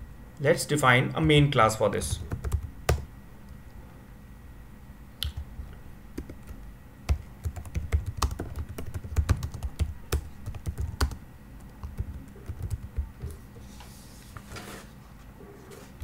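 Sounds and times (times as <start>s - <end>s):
computer keyboard typing: 2.2s - 3.1s, 6.2s - 13.4s.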